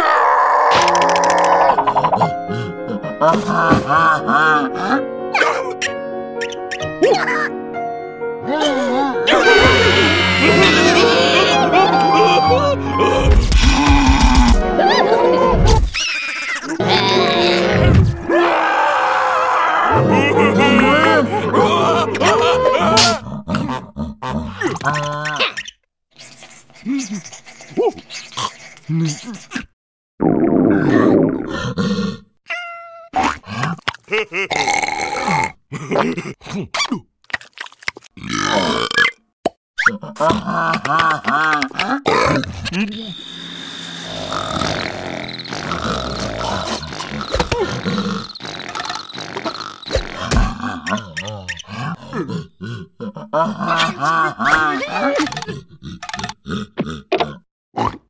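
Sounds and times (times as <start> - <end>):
cartoon voices grunting: 3.2 - 5.8, 8.4 - 25.6, 26.7 - 29.8, 30.7 - 37.0, 39.8 - 43.1, 44.2 - 48.4, 49.2 - 58.0
short clipped vocal sounds: 24.6 - 29.7, 39.8 - 43.1
cartoon character grunts: 32.5 - 37.0.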